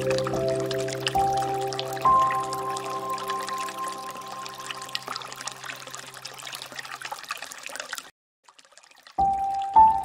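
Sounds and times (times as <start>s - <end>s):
water trickling and splashing: 0.0s - 10.0s.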